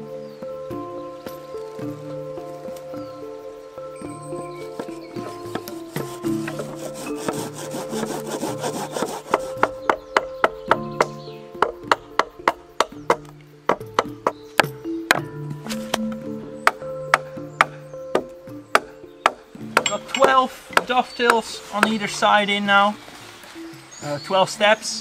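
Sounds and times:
background music: 0:00.0 - 0:25.0
sharp wooden knocks: 0:04.5 - 0:22.5
saw rasping on wood: 0:04.8 - 0:10.7.

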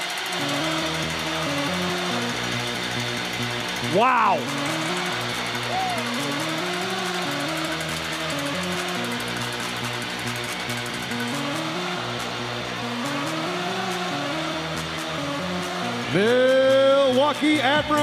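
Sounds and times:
goal song music: 0:03.8 - 0:06.7
crowd noise: 0:05.6 - 0:06.2.

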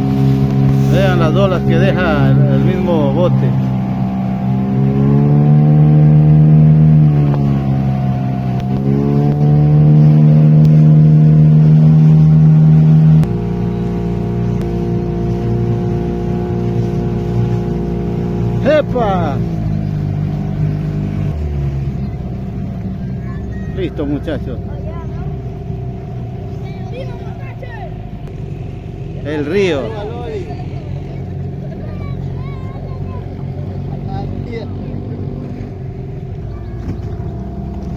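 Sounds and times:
boat motor running: 0:00.0 - 0:37.9
quiet engine hum: 0:00.0 - 0:37.9.

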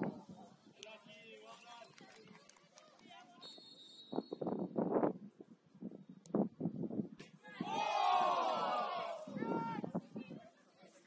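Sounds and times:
high whistle-like tone: 0:03.4 - 0:04.5
distant footballers calling out: 0:07.5 - 0:11.0.

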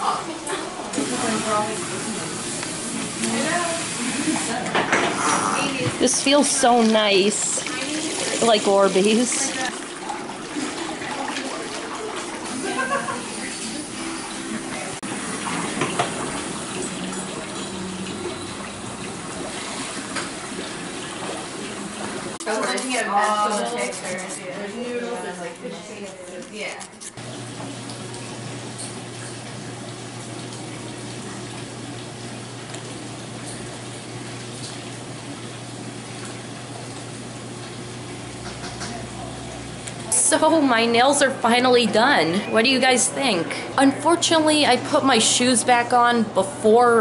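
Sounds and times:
running water in foot basin: 0:00.0 - 0:47.0.

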